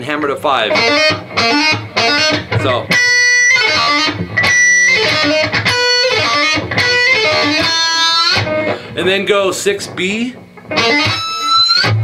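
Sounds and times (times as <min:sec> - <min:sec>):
electric guitar lead: 0:00.0 - 0:12.0.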